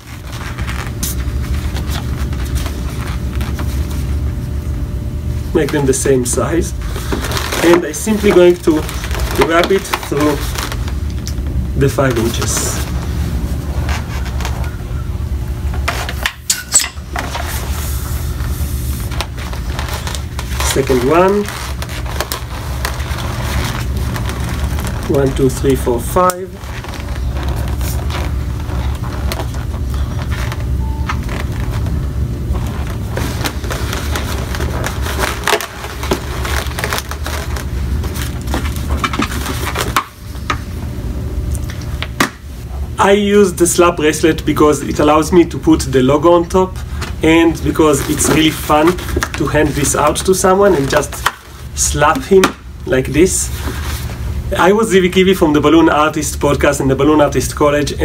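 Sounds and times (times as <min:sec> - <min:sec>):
balloons squeaking and rubbing: 0:00.0 - 0:04.5, 0:05.5 - 0:16.2, 0:17.0 - 0:40.4, 0:44.7 - 0:55.2
steady low hum: 0:00.0 - 0:58.0.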